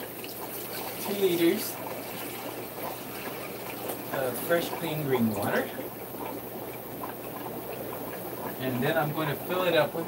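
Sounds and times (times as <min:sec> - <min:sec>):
low steady background noise: 0:00.0 - 0:10.0.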